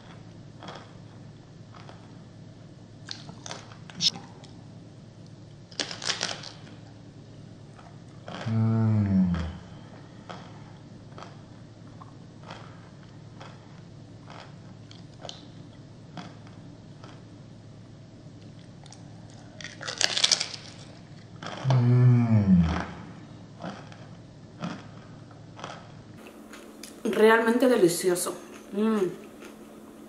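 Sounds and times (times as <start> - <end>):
crunching tortilla chip: 5.7 - 6.9, 13.4 - 15.4, 18.4 - 21.8.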